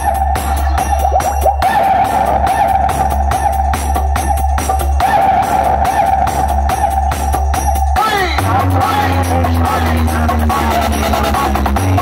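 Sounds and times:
loud dj music with heavy bass: 0.0 - 12.0.

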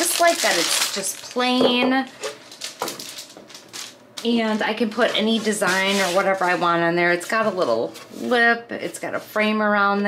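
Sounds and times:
plastic wrap crinkling: 0.0 - 8.2.

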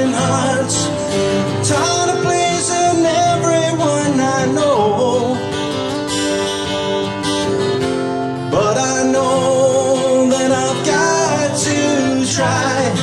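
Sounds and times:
man singing: 0.0 - 5.8, 8.5 - 13.0
acoustic guitars playing chords: 0.0 - 13.0.

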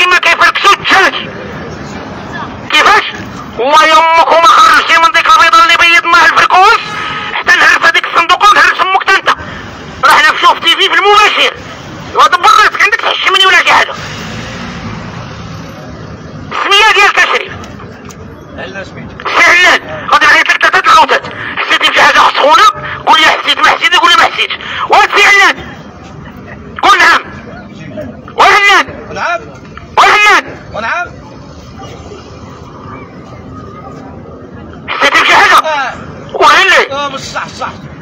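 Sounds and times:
street background hum: 0.0 - 38.0
faint murmur of voices: 30.6 - 34.9.

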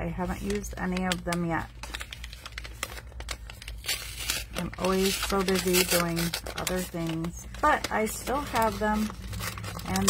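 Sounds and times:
paper packaging crinkling: 0.0 - 10.0.

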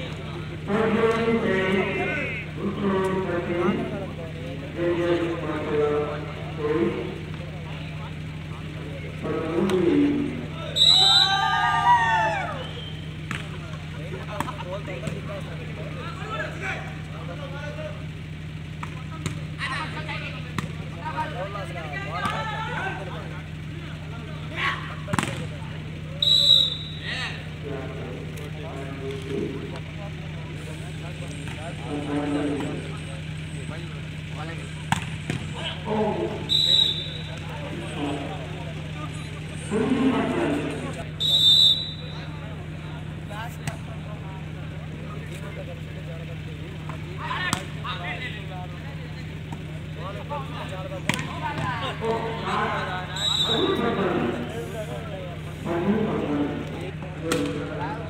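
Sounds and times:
people calling out: 0.0 - 45.0, 45.7 - 58.0
steady low hum: 0.0 - 58.0
short high whistle blasts: 10.7 - 11.6, 12.6 - 13.1, 26.2 - 27.2, 36.5 - 37.3, 41.2 - 42.3, 53.1 - 53.9.

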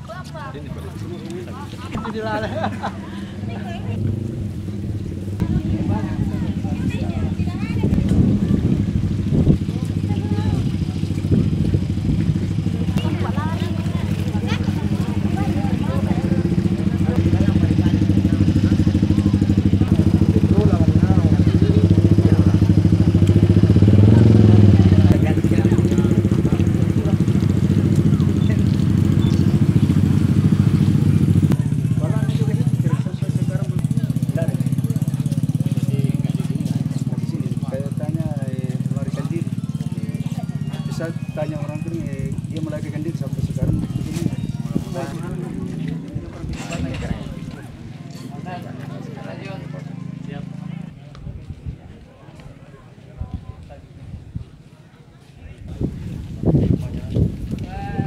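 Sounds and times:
engine running: 0.0 - 51.0
people talking: 0.0 - 58.0.

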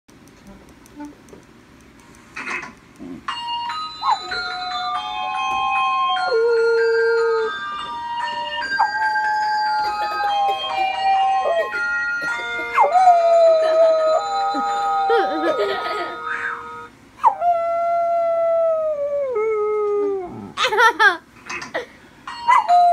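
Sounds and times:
dog howling: 5.3 - 7.6, 12.8 - 15.6
held electronic notes: 14.0 - 16.9.

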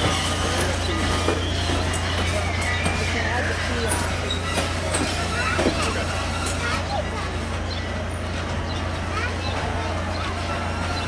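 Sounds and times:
people talking: 0.0 - 11.0
train coaches rolling past: 0.0 - 11.0.

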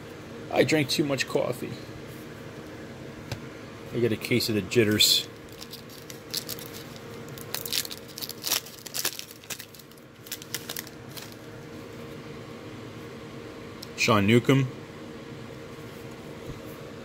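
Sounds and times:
steady low hum: 0.0 - 17.0
foil wrapper tearing and crinkling: 5.3 - 11.5.

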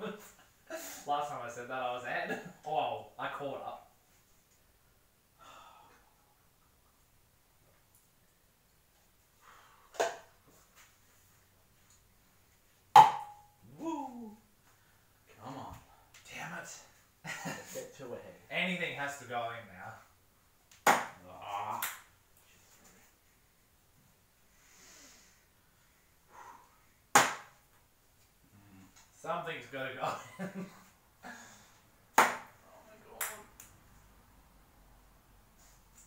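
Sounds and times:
sharp knocks: 13.0 - 13.4
short vocal sound: 13.7 - 14.5, 28.5 - 29.0.

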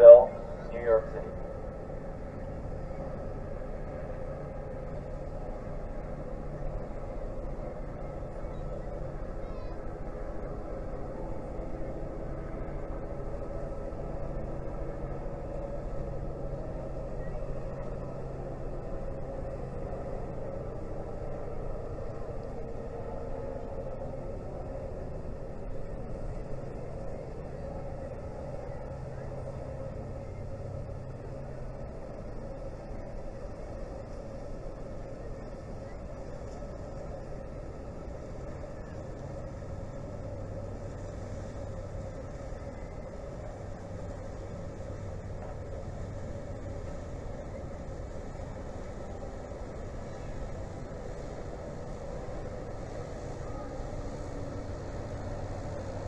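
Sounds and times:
ship diesel engines droning: 0.0 - 56.0.

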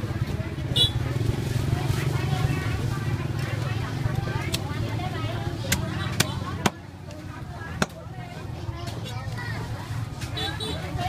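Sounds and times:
small engine rumbling: 0.0 - 11.0.

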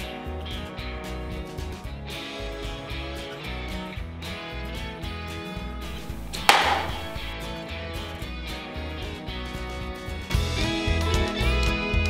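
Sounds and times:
arrow striking target thwack: 5.8 - 7.4.

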